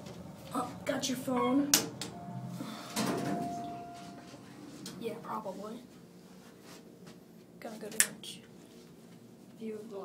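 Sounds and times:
elevator machinery whine: 0:00.0 - 0:05.4
elevator thud: 0:02.9 - 0:04.0.

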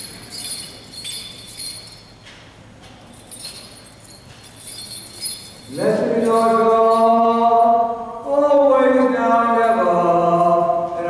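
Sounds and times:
censer bells jingling: 0:00.0 - 0:02.2, 0:03.1 - 0:07.5.

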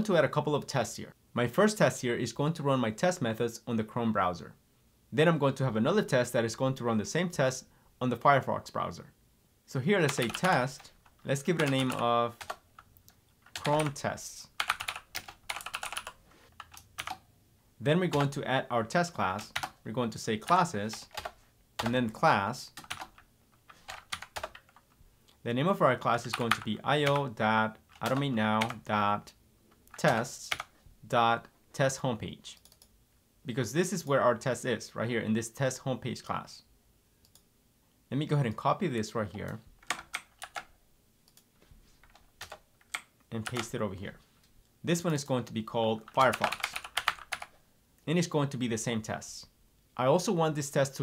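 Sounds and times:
typing on computer keyboard: 0:10.1 - 0:14.0, 0:14.6 - 0:17.2, 0:19.4 - 0:19.8, 0:20.4 - 0:22.0, 0:22.8 - 0:24.9, 0:27.9 - 0:28.8, 0:39.4 - 0:40.7, 0:42.0 - 0:43.7, 0:46.1 - 0:47.5
keyboard keys clicking: 0:14.6 - 0:17.2, 0:22.8 - 0:23.2, 0:23.9 - 0:24.8, 0:46.1 - 0:47.5.

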